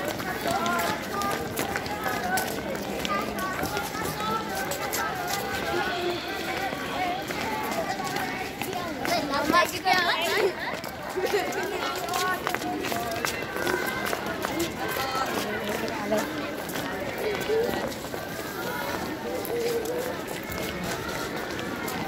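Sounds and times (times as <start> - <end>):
children chattering: 0.0 - 22.0
footsteps scuffing on paving stones: 0.0 - 22.0.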